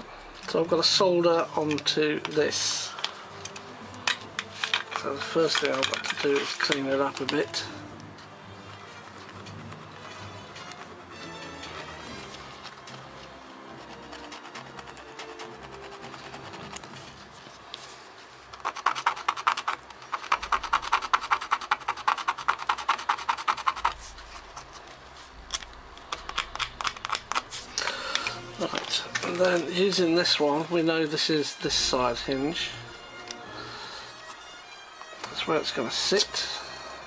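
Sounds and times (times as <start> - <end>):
faint music: 0.0 - 37.0.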